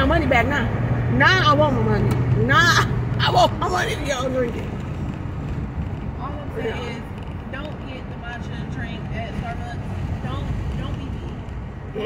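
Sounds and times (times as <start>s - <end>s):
people talking: 0.0s - 4.7s, 6.2s - 11.4s
car road and engine rumble: 0.0s - 12.0s.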